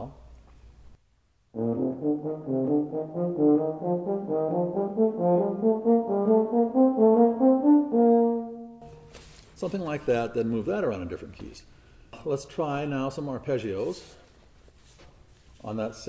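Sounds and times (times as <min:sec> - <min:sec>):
euphonium playing scale: 0:01.6 - 0:09.1.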